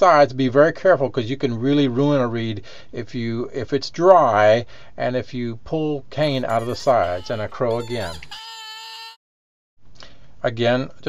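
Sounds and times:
oboe reed crowing: 6.2 - 9.2.

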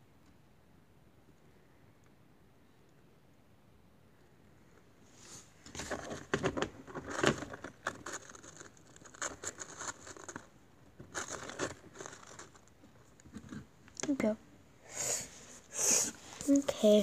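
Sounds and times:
handling noise scraping and clicking: 5.6 - 14.1.

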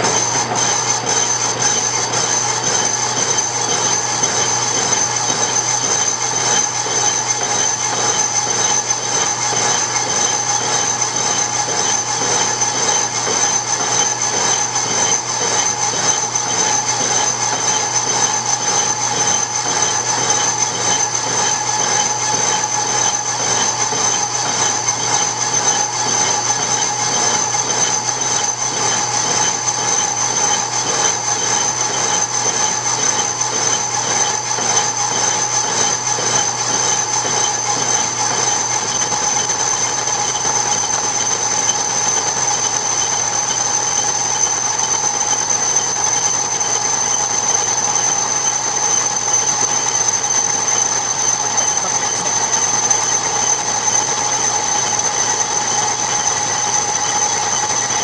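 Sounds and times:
high steady whine: 0.0 - 27.6, 36.5 - 58.0
lathe cutting metal: 0.0 - 58.0.

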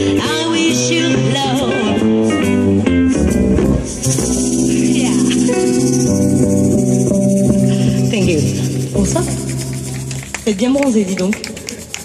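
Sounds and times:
woman singing: 0.0 - 2.2.

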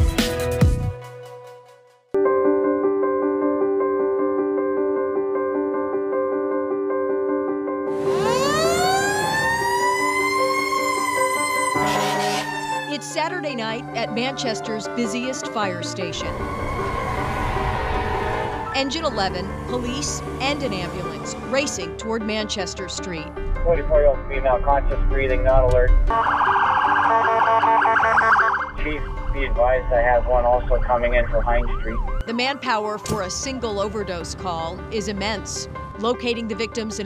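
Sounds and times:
fire truck siren: 7.9 - 23.0, 26.1 - 33.9.

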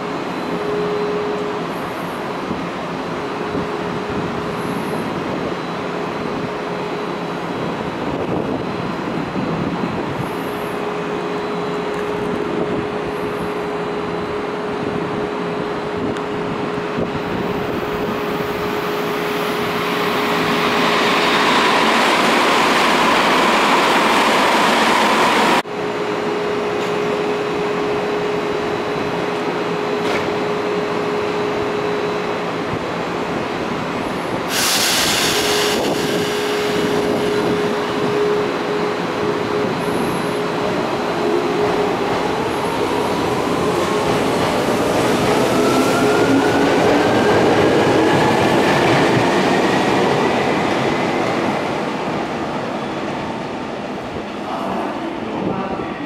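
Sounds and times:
stopped train humming: 0.0 - 56.0
air hiss: 34.5 - 37.0.

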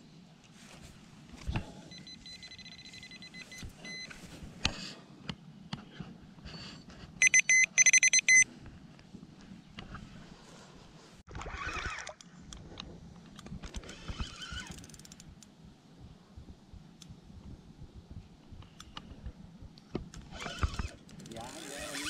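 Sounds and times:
rustling handling noise: 0.4 - 4.6
high electronic beeps: 1.9 - 4.1, 7.2 - 8.4
fishing reel clicking: 13.8 - 15.4, 20.4 - 22.0.

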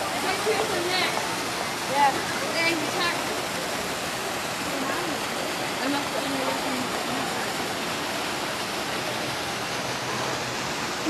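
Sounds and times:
faint voices talking: 0.0 - 11.0
fountain water splashing: 0.0 - 11.0.

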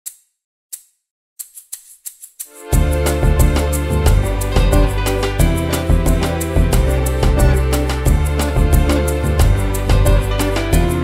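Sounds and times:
crisp percussion clicks: 0.1 - 2.6
bossa nova band: 3.0 - 11.0.

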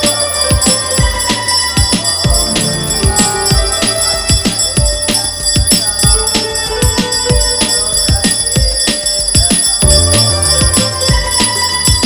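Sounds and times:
bells ringing: 0.0 - 12.0
drum beating: 0.0 - 12.0.

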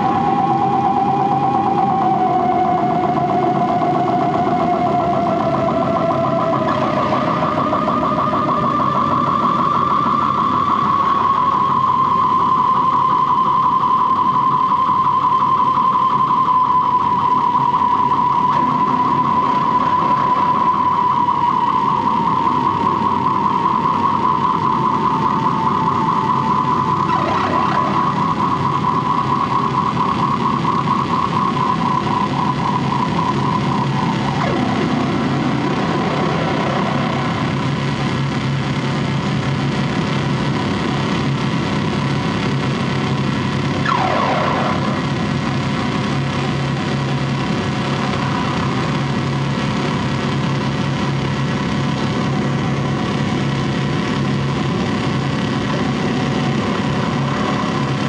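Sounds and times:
distorted electronic noise: 0.0 - 58.0
warbling siren-like feedback tone: 0.0 - 58.0.

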